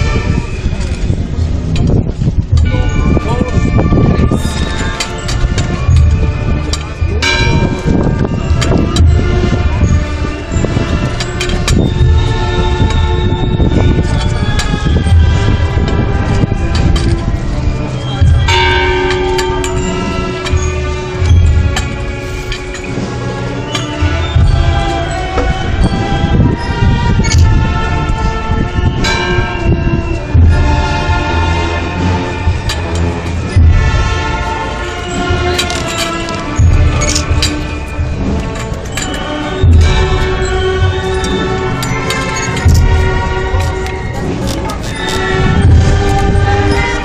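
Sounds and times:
band playing funeral march: 0.0 - 47.0
deep drum strokes: 0.0 - 47.0
sustained brass chords: 0.0 - 47.0
bell ringing: 17.9 - 27.4, 29.0 - 47.0.

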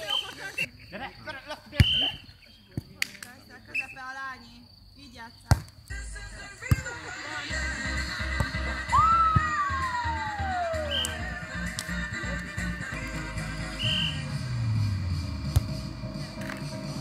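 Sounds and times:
voices on the court: 0.0 - 8.7
hands smacking volleyball: 5.5 - 5.8, 11.0 - 12.0
background music with steady beat: 5.8 - 17.0.

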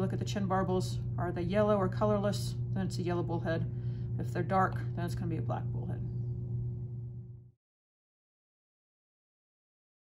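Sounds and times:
steady low hum: 0.0 - 7.6.

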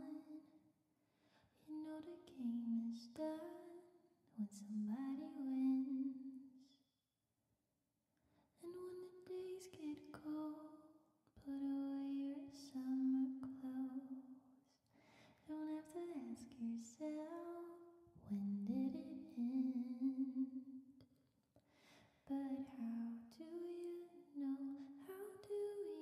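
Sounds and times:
woman singing softly: 0.0 - 0.6, 1.6 - 6.8, 8.5 - 20.8, 22.2 - 26.0.

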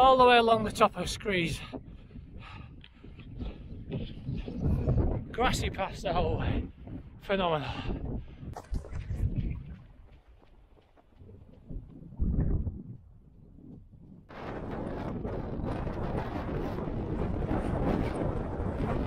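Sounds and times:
strong wind buffeting microphone: 0.0 - 19.0.

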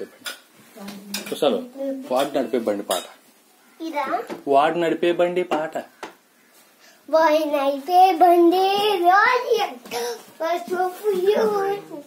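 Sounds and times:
boy's voice: 7.1 - 12.0.

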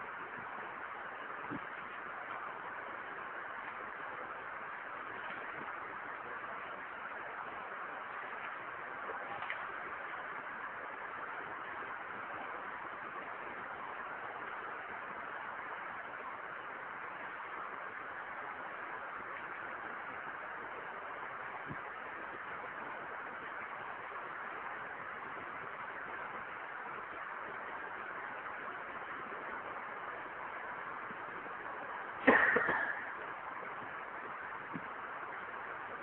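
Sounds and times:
background hiss: 0.0 - 36.0.

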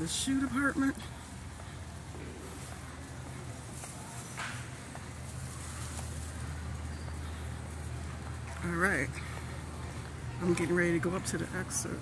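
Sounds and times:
store background hum: 0.0 - 12.0.

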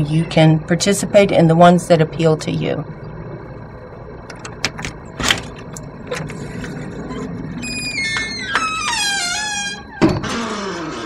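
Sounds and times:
door hinges creaking: 4.4 - 11.0.

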